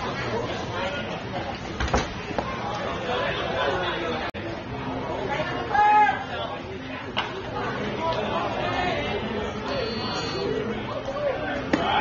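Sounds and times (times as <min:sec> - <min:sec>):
indistinct voices chattering: 0:00.0 - 0:12.0.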